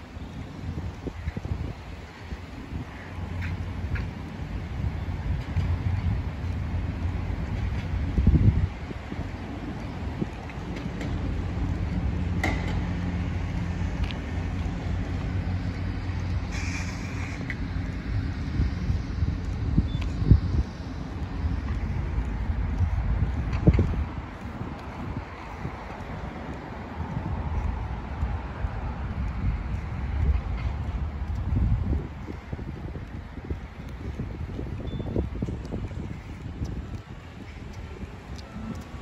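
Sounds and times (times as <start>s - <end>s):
road traffic going by: 0.0s - 39.0s
wind rumbling on microphone: 0.0s - 39.0s.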